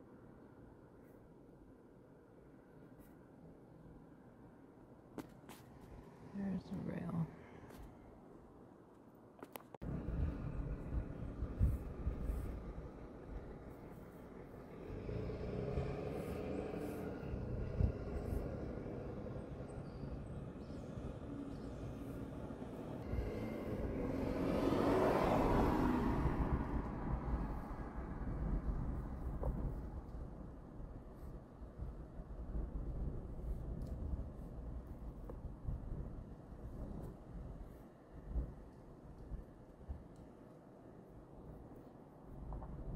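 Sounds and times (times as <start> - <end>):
street traffic passing: 9.8 - 33.2.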